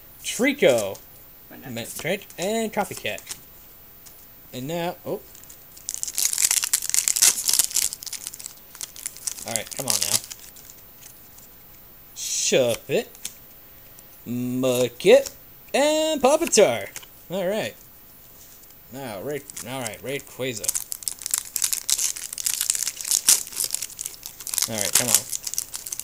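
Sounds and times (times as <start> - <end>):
cards rustling: 0.6 - 1.0, 1.8 - 3.4, 5.2 - 11.5, 14.7 - 15.4, 16.2 - 17.1, 18.4 - 26.0
foil wrapper crinkling: 5.3 - 11.5, 19.3 - 26.0.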